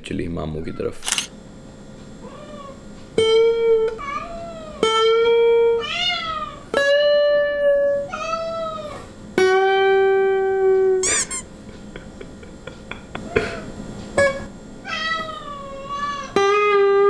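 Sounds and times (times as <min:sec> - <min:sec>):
cat meowing: 0:02.2 - 0:02.8, 0:03.9 - 0:06.6, 0:07.8 - 0:09.1, 0:14.8 - 0:17.0
short high squeak: 0:11.0 - 0:11.5.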